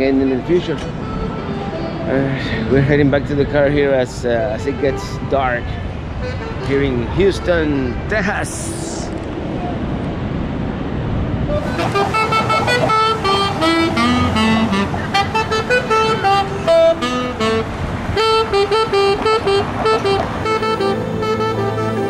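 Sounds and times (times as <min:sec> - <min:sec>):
street traffic: 0:00.0 - 0:22.0
saxophone slow melody: 0:00.6 - 0:03.0, 0:05.9 - 0:07.1, 0:11.4 - 0:22.0.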